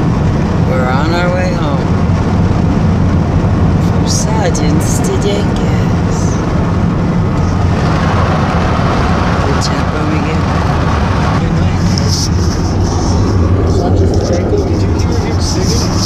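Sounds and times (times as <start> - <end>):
vehicle engine and road noise: 0.0 - 16.0.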